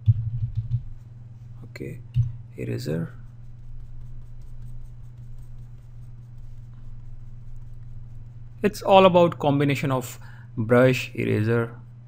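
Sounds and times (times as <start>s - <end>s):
low electrical hum: 0.0s - 12.0s
mouse rubbing across desk: 2.6s - 9.0s.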